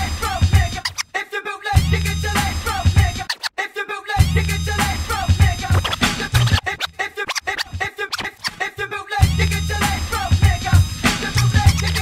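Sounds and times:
hip hop track: 0:00.0 - 0:12.0
turntable scratching: 0:00.2 - 0:01.1, 0:02.0 - 0:03.6, 0:04.2 - 0:08.9, 0:09.8 - 0:12.0
deep bass line: 0:01.8 - 0:03.2, 0:04.2 - 0:07.0, 0:09.2 - 0:12.0.

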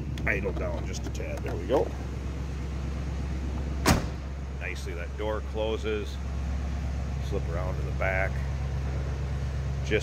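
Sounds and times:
car engine idling: 0:00.0 - 0:10.0
car door slamming: 0:03.6 - 0:04.3.

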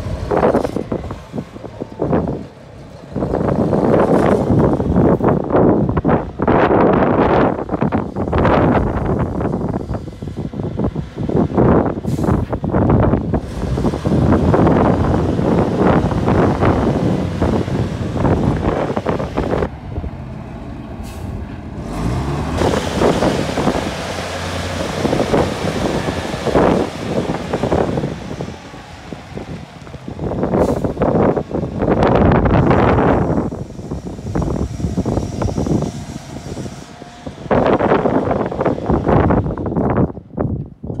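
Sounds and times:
forklift engine running: 0:00.0 - 0:41.0.

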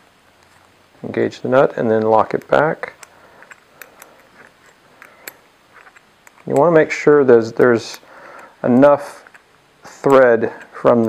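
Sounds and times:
faint metal clicks of wrench: 0:01.9 - 0:06.8, 0:07.6 - 0:11.0.

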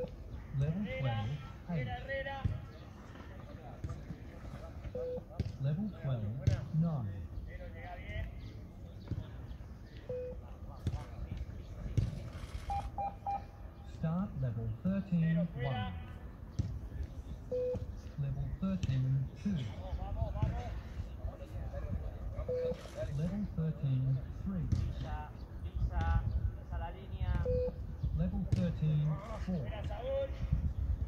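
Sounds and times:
men's voices: 0:00.0 - 0:12.5, 0:13.7 - 0:30.8
short electronic beeps: 0:04.9 - 0:05.3, 0:12.7 - 0:13.5, 0:17.5 - 0:17.9, 0:22.5 - 0:22.9, 0:27.4 - 0:27.8.

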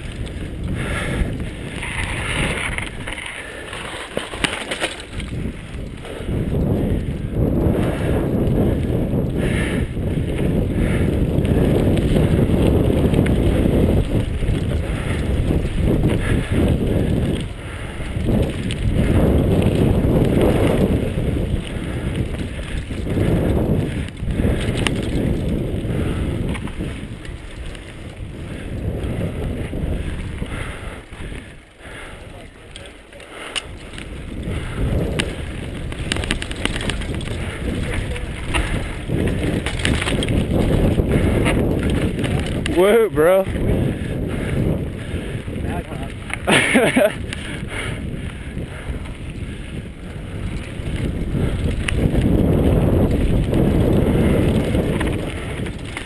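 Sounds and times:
bike tyres rumbling on dirt: 0:00.0 - 0:56.0
wind buffeting microphone: 0:00.0 - 0:56.0.

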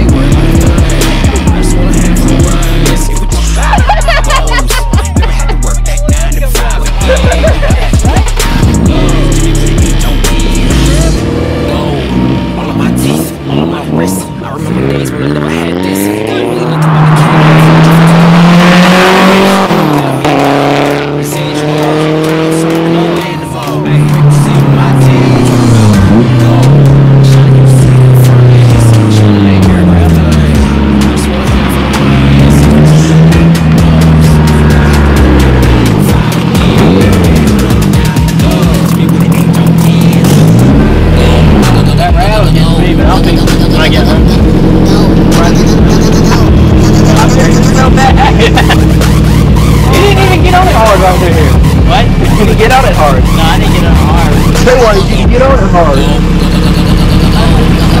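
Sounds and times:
car engine revving: 0:00.0 - 0:58.0
tires squealing: 0:00.0 - 0:58.0.

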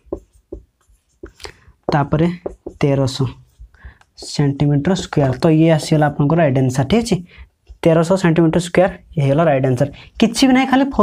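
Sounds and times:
marker pen writing on whiteboard: 0:00.0 - 0:08.1.

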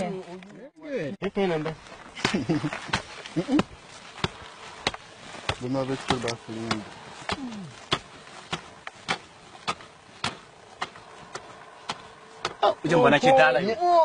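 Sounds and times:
digging tool striking hard mud: 0:02.2 - 0:12.7.

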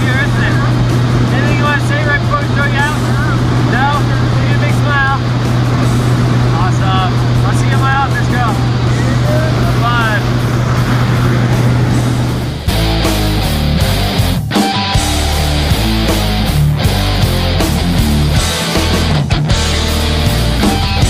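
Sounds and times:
plane engine drone in cabin: 0:00.0 - 0:18.7.

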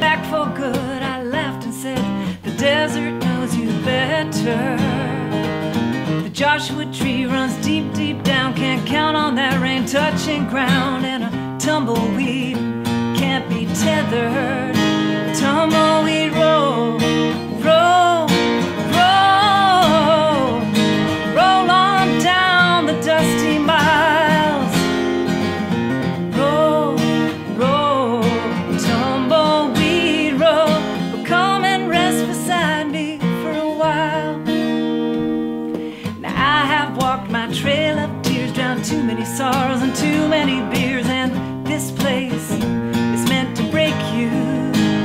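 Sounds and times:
strummed acoustic guitar: 0:00.0 - 0:45.0
woman singing country-style: 0:00.0 - 0:45.0.

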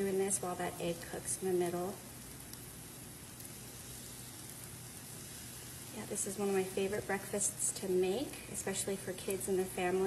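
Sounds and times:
batter sizzling in a frying pan: 0:00.0 - 0:10.0.

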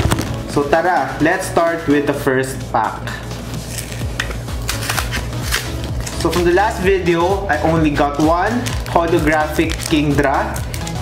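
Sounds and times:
background music bass line: 0:00.0 - 0:11.0
foil wrapper crinkling and tearing: 0:03.7 - 0:06.5, 0:08.2 - 0:11.0.

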